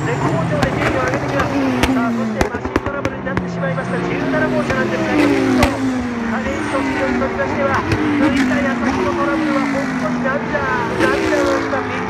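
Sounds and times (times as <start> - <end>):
race cars passing by: 0.0 - 12.0.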